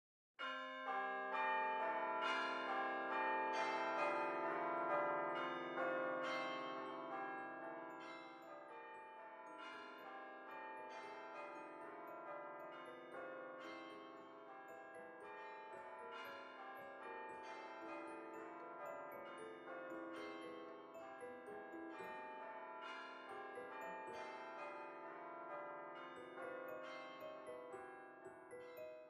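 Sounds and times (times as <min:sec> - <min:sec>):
bells ringing: 0:00.4 - 0:29.0.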